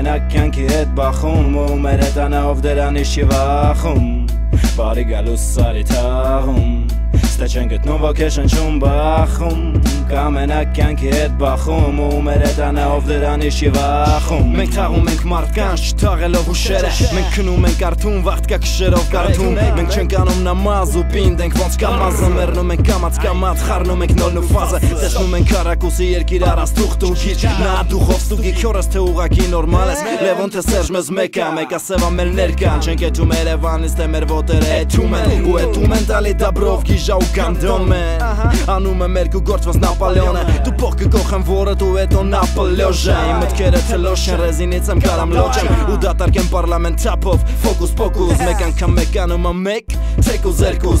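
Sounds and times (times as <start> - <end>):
deep bass: 0.0 - 30.0, 30.6 - 31.0, 32.0 - 51.0
man rapping over a beat: 0.0 - 51.0.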